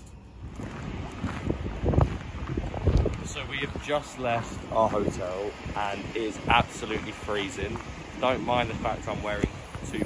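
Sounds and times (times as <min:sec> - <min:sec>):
wind buffeting microphone: 0:00.3 - 0:10.0.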